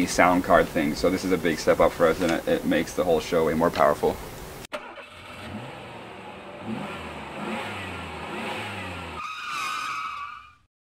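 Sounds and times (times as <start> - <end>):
engine revving: 4.8 - 9.3
loud horn-like high tone: 9.1 - 10.6.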